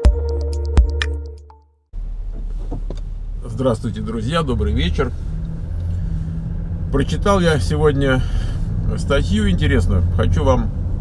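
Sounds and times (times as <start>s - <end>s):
car engine and tyre hum: 1.9s - 11.0s.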